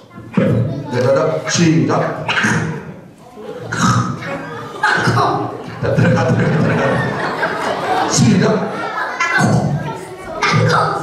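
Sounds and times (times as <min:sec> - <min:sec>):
child speaking into microphone: 0:00.0 - 0:06.0, 0:08.7 - 0:11.0.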